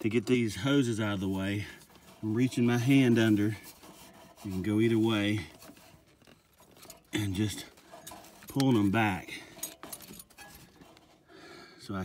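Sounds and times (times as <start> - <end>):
rubber hoses rubbing: 0.0 - 11.3
man talking: 7.1 - 7.8, 8.5 - 9.5, 11.8 - 12.0.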